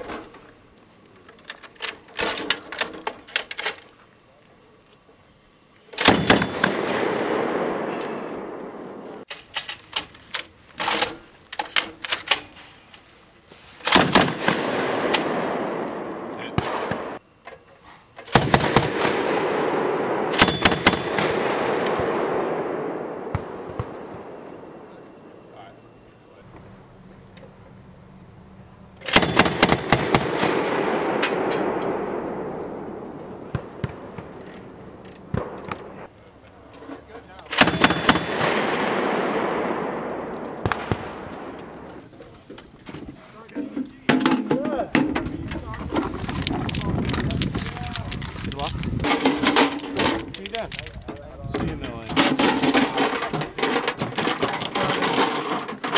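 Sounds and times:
grenade launcher bursts: 6.0s - 9.2s, 13.8s - 17.2s, 18.2s - 25.0s, 29.0s - 36.1s, 37.5s - 42.0s
rolling rumble: 18.3s - 55.9s.

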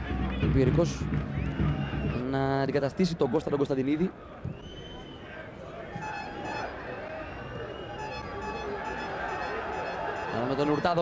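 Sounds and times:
stadium crowd: 0.0s - 11.0s.

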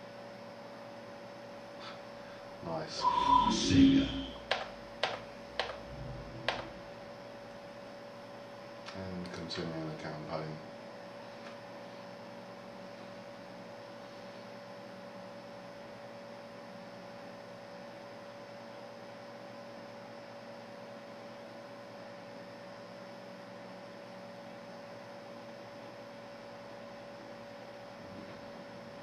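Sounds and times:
computer hum: 2.2s - 9.1s.

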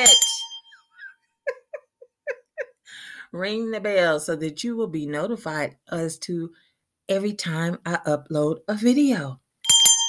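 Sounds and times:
person speaking: 0.0s - 0.5s
small handbell ringing: 0.0s - 1.0s, 9.6s - 10.0s
woman giggling: 0.8s - 3.0s.

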